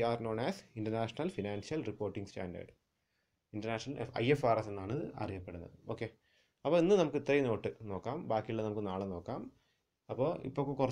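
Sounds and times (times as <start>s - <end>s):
man speaking: 0.0s - 2.8s, 3.5s - 10.9s.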